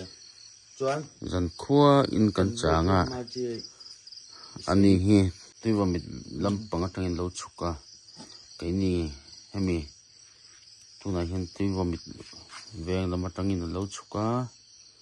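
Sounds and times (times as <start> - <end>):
crickets chirping: 0.0 - 15.0
people talking: 0.8 - 3.7, 4.6 - 7.8, 8.6 - 9.9, 11.0 - 14.5.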